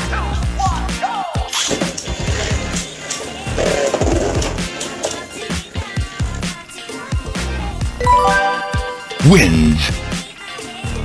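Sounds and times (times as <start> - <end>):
background music: 8.0 - 10.0.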